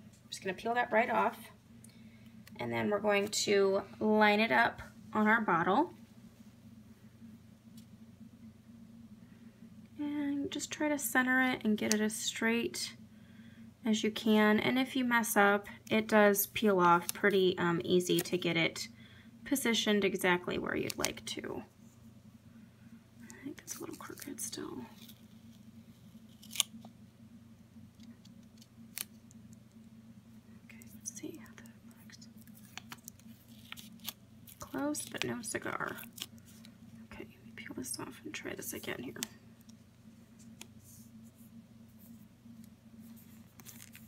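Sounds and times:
faint low hum: 0.0s - 44.0s
person whispering: 30.6s - 32.3s
paper label rustling: 32.4s - 36.8s, 42.0s - 44.0s.

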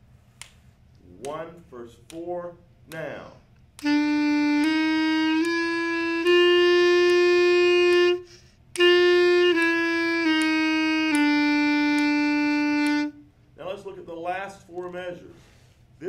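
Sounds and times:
clarinet playing slow notes: 3.8s - 13.3s
player breathing: 8.2s - 8.7s, 15.3s - 15.9s.

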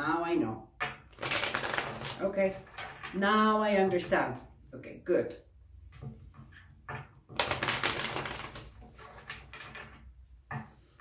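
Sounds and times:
cards being shuffled: 1.1s - 3.1s, 7.4s - 9.8s.

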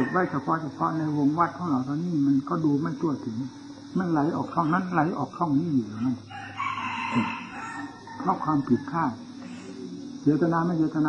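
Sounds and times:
rooster crowing: 0.0s - 0.6s, 6.0s - 10.0s
person speaking: 0.0s - 6.3s, 7.0s - 11.0s.

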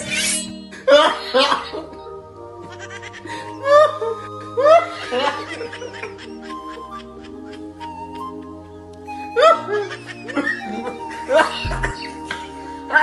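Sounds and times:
background music with held notes: 0.0s - 13.0s
man laughing: 9.8s - 12.1s.

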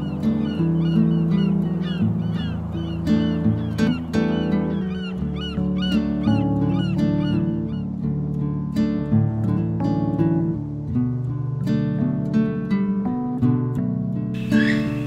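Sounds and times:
bird chirping: 0.0s - 7.9s, 14.4s - 15.0s
calm background music: 0.0s - 15.0s.

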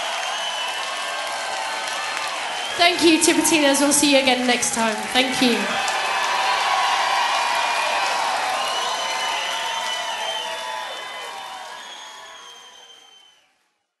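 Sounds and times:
audience applauding and cheering: 0.0s - 13.6s.

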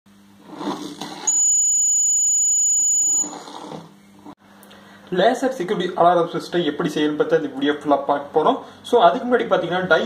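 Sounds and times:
piezo buzzer shrill beep: 1.3s - 3.3s.

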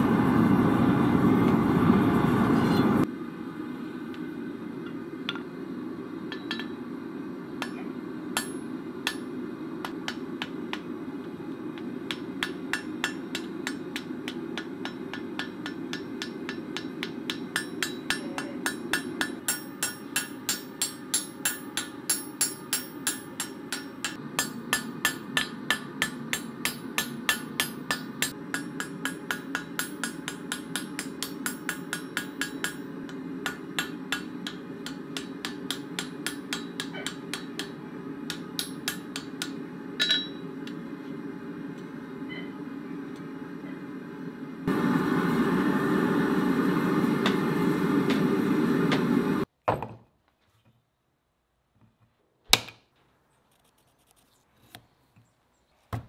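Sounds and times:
hammer ringing on anvil: 6.3s - 6.8s, 8.4s - 9.4s, 12.1s - 40.5s.

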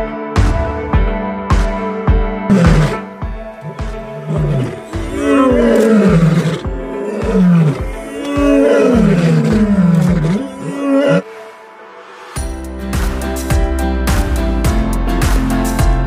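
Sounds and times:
background music with steady beat: 0.0s - 10.5s, 11.5s - 16.0s
lions roaring: 2.5s - 11.2s.

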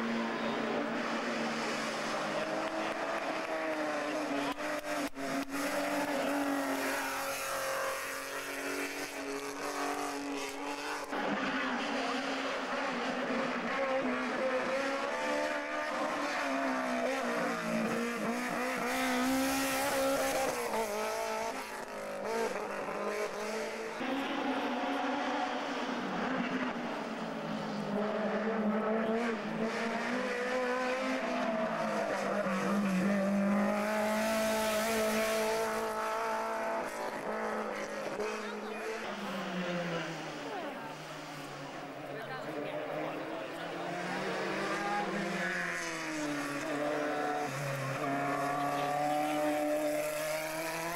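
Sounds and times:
race car engines revving: 0.0s - 50.9s.

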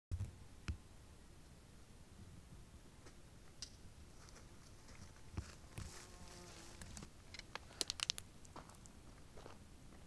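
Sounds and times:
insect buzzing faintly: 0.4s - 7.6s.

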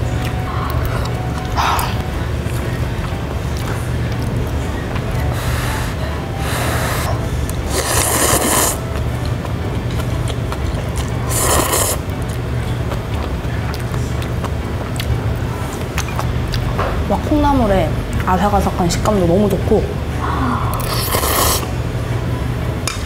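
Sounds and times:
low room hum: 0.0s - 23.0s
noodles being slurped: 7.7s - 8.8s, 11.2s - 12.1s, 20.8s - 21.7s.

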